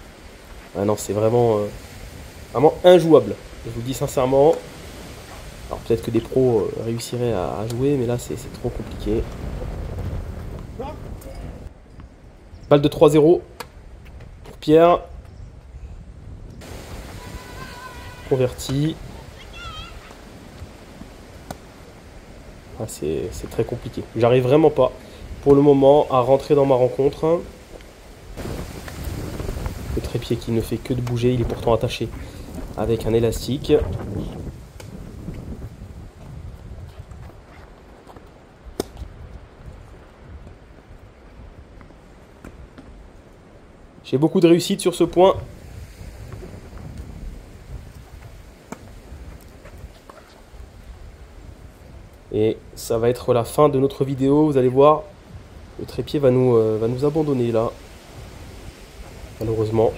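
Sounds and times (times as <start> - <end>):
wind buffeting microphone: 0.0 - 59.9
tennis ball struck: 21.4 - 21.7.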